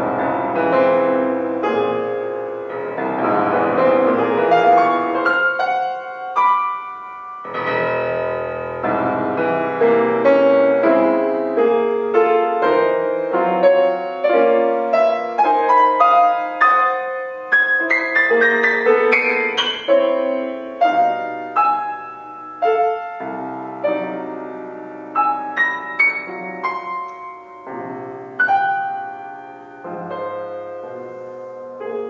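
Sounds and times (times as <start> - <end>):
solo grand piano: 0.0 - 32.0.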